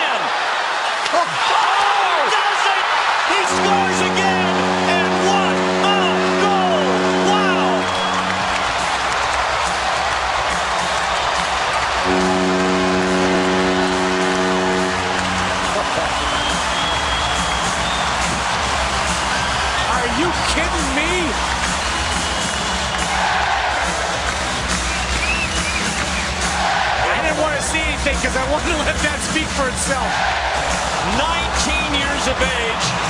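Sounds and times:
crowd cheering: 0:00.0 - 0:33.0
goal horn blasts: 0:03.3 - 0:09.2, 0:12.0 - 0:18.4.

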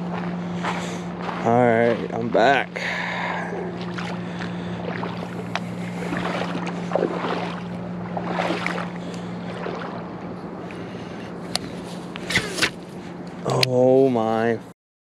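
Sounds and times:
faint water sounds: 0:00.0 - 0:14.6
steady low hum: 0:00.0 - 0:14.7.

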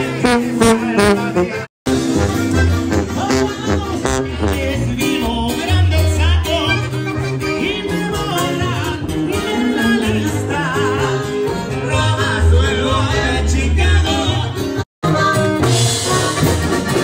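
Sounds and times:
sousaphone bass line: 0:00.0 - 0:14.8
person singing: 0:00.0 - 0:16.2
latin band music: 0:00.0 - 0:17.0.

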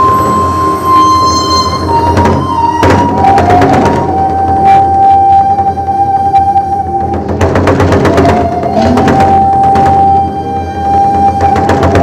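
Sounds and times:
music with long held note: 0:00.0 - 0:12.0.

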